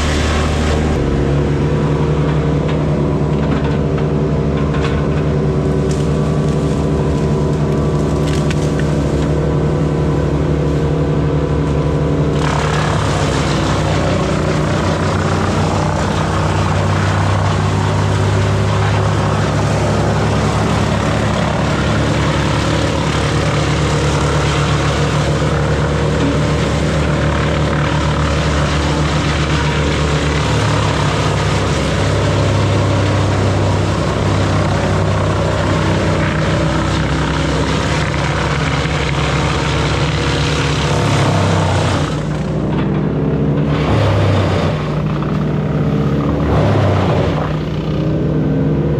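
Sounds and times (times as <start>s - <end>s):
wood chipper rushing hiss: 0.0s - 4.3s, 5.3s - 48.3s
diesel engine running: 0.0s - 48.9s.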